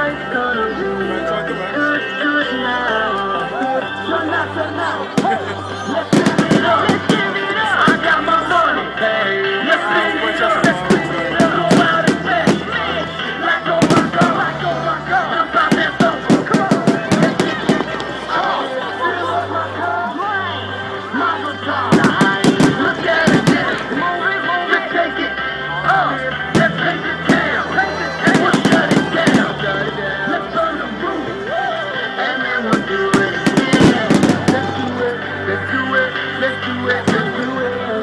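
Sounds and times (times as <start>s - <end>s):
music through loudspeakers: 0.0s - 38.0s
people chattering: 0.0s - 38.0s.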